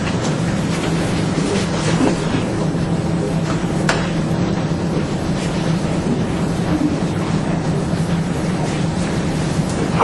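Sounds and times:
low drone: 0.0 - 10.0
room hum and hiss: 0.0 - 10.0.

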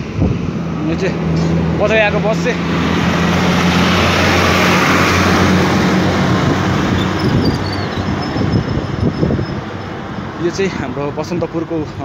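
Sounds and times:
large vehicle engine drone: 0.0 - 12.0
rushing noise of passing vehicle: 0.0 - 12.0.

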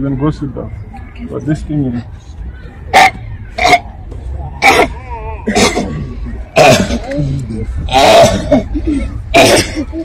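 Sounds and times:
person coughing hard: 4.6 - 7.1, 7.9 - 10.0.

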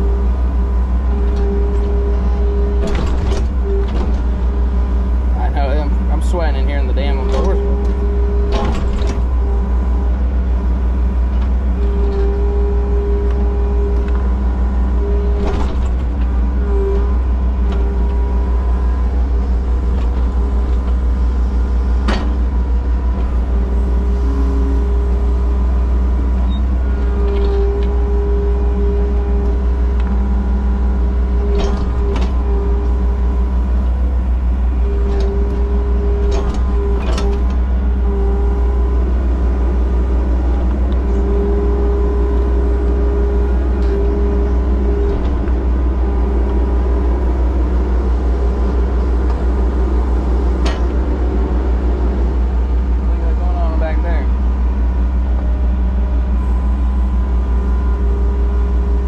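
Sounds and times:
diesel engine drone: 0.0 - 59.0
hydraulic whine: 0.0 - 59.0.

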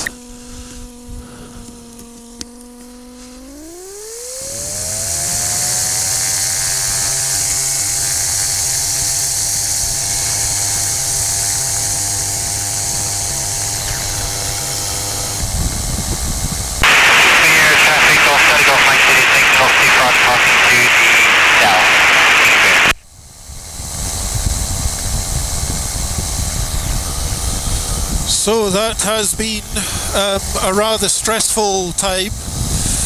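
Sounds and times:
aircraft engine and propeller: 0.0 - 20.1, 23.0 - 33.0
loud wind rush: 15.2 - 30.4, 32.3 - 33.0.

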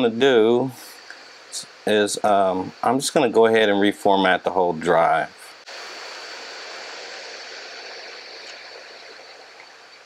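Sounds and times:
faint high-pitched whine: 0.0 - 10.0
steady background hiss: 0.0 - 10.0.

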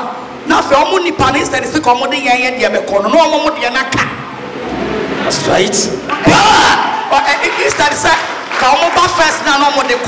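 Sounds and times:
indistinct crowd noise: 0.0 - 10.0.

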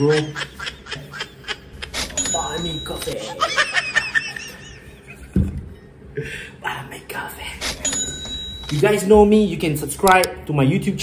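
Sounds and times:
man giggling: 0.0 - 2.2.

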